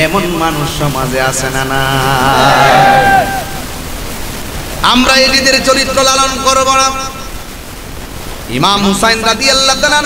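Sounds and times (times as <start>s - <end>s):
man preaching over loudspeaker: 0.0s - 2.4s, 4.8s - 7.3s, 8.5s - 10.0s
loudspeaker hiss: 0.0s - 10.0s
crowd noise: 2.0s - 3.8s.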